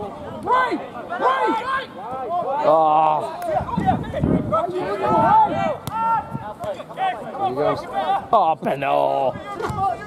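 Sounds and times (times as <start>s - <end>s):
men calling and shouting: 0.0s - 10.0s.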